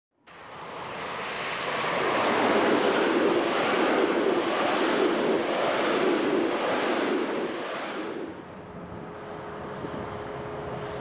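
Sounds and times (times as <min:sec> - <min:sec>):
passenger train passing at speed: 0:00.2 - 0:11.0.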